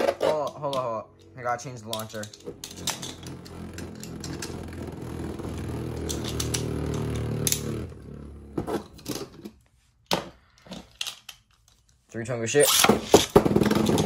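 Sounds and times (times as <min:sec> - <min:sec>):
spinning top whirring: 0:02.1 - 0:08.6.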